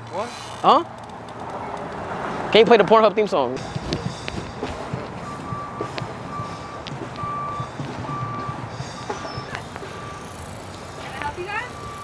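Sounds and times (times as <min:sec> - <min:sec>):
outdoor background noise: 0:00.0 - 0:12.0
electronic beeps: 0:03.6 - 0:12.0.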